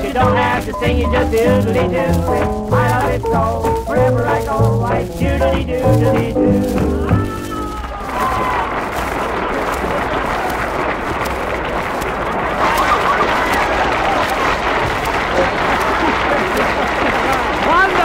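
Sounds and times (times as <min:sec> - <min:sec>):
band with singing: 0:00.0 - 0:08.6
audience applause: 0:00.0 - 0:18.0.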